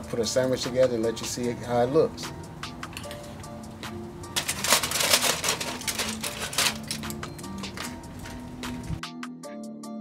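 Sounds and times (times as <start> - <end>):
background music: 0.0 - 10.0
aluminium foil crinkling: 4.4 - 7.9.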